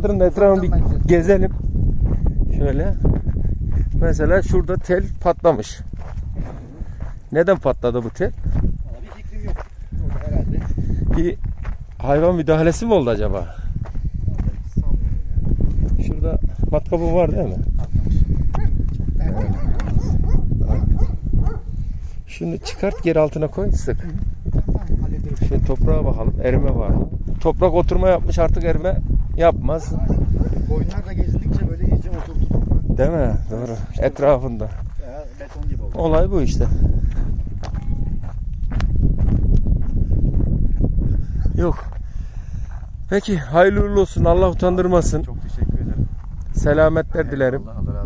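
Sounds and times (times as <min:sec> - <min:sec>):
footsteps on stony ground: 0:00.1 - 0:47.0.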